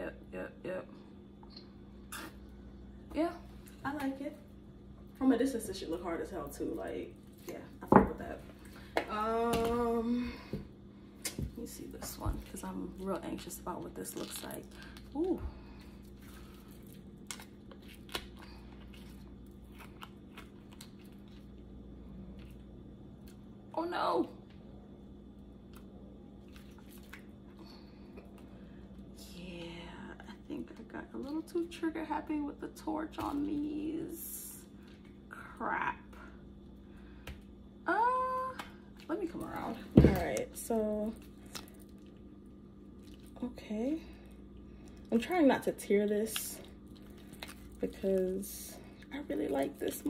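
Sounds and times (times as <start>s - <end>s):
silicone mold crackling: 38.2s - 50.0s
silicone mold squishing: 44.2s - 50.0s.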